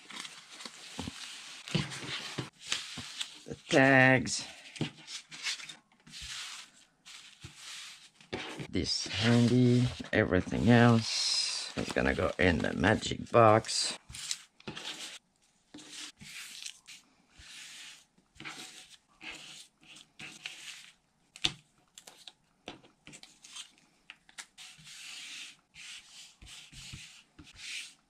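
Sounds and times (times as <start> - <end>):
paper rustling and sliding: 0.0 - 3.8, 4.6 - 21.0.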